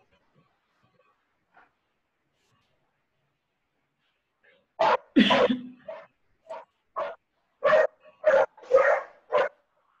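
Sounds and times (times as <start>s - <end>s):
dog barking: 4.8s - 9.7s.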